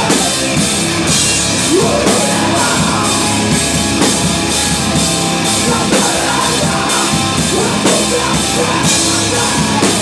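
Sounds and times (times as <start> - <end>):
hardcore rock band playing live: 0.0 - 10.0.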